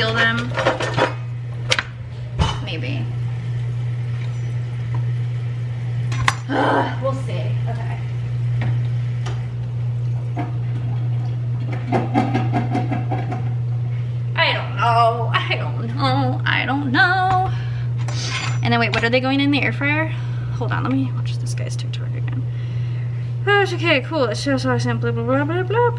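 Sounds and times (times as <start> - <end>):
low appliance hum: 0.0 - 25.9.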